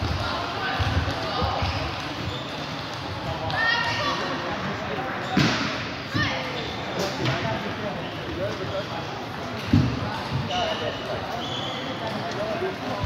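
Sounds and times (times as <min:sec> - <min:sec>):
hubbub of voices: 0:00.0 - 0:13.0.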